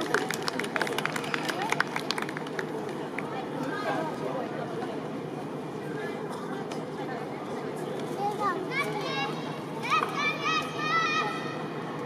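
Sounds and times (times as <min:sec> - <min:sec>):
murmur of outdoor crowd: 0:00.0 - 0:12.0.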